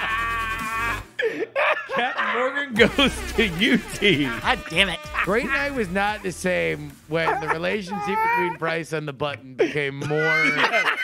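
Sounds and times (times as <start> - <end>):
voices: 2.1 - 10.5.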